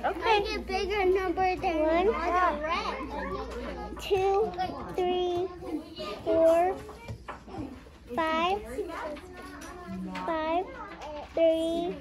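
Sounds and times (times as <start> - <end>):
child speaking: 0.0 - 12.0
children's voices: 0.0 - 12.0.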